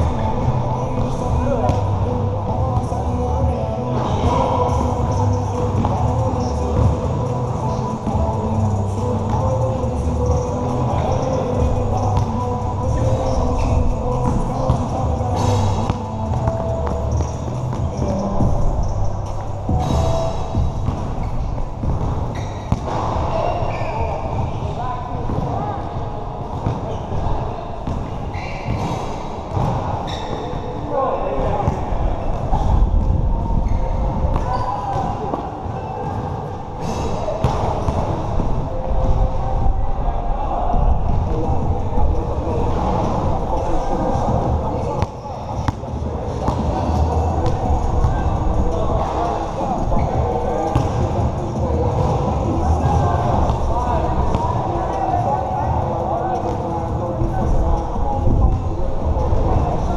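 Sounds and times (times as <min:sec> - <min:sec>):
players' voices: 0:00.0 - 0:59.9
basketball bouncing on court: 0:13.8 - 0:24.6, 0:26.5 - 0:30.6, 0:37.4 - 0:38.0, 0:50.0 - 0:51.3
basketball bouncing on hard court: 0:19.7 - 0:23.3, 0:28.7 - 0:30.3, 0:50.7 - 0:51.1.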